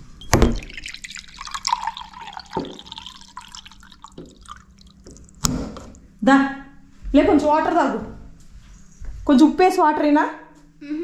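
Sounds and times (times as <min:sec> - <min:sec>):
water running into vessel: 0:00.3 - 0:05.6.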